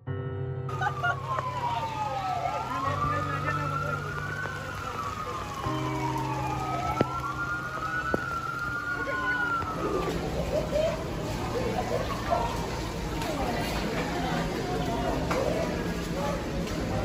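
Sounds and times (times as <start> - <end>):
emergency siren wailing: 0.7 - 11.2.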